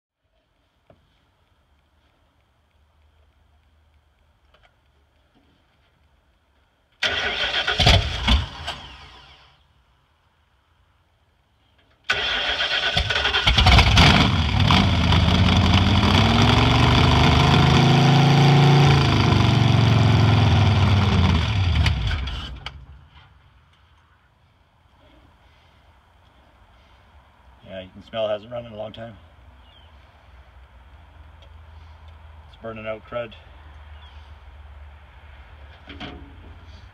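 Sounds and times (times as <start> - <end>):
engine cranking: 7.0 - 9.4, 12.1 - 16.6
loud engine revving: 12.9 - 22.4.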